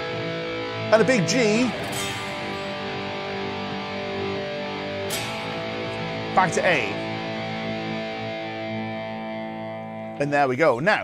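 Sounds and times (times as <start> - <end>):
electric guitar chord strummed: 0.0 - 10.3.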